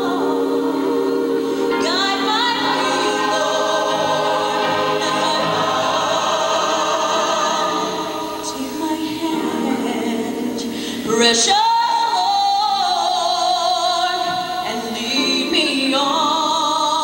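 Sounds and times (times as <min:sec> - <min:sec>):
mixed choir singing held chords: 0:00.0 - 0:17.0
woman lead singing: 0:00.0 - 0:17.0.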